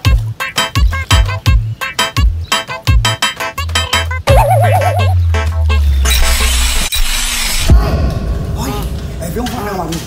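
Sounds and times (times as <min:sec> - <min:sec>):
cartoon boing: 0:04.3 - 0:05.2.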